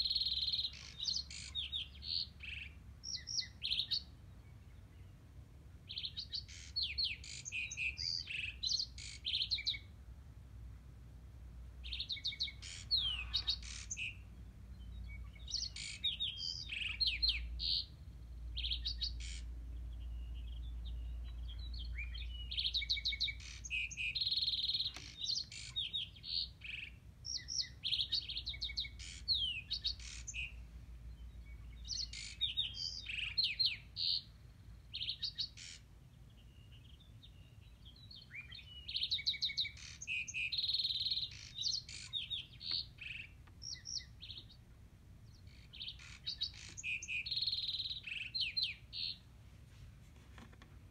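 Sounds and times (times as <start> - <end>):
songbirds chirping and trilling: 0.0 - 50.9.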